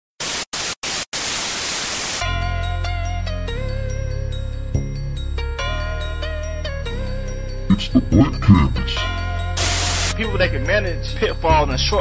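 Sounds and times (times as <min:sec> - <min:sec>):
static hiss: 0:00.2 - 0:02.2, 0:09.6 - 0:10.2.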